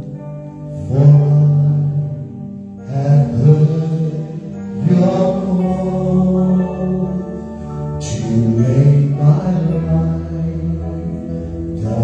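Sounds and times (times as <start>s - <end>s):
keyboard: 0.0s - 12.0s
person singing worship song: 0.7s - 12.0s.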